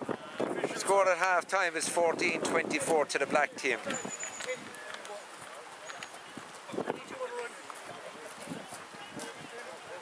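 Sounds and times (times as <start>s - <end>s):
faint voices on playing field: 0.0s - 10.0s.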